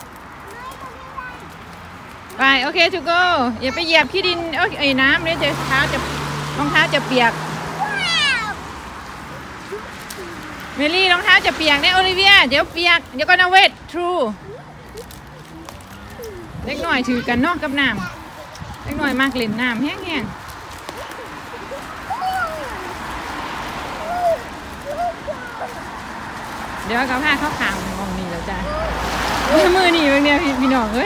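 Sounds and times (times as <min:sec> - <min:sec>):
traffic on wet road: 0:00.0 - 0:31.0
child crying: 0:07.8 - 0:08.6, 0:09.6 - 0:10.6, 0:21.1 - 0:23.1, 0:23.9 - 0:25.9, 0:28.6 - 0:29.1.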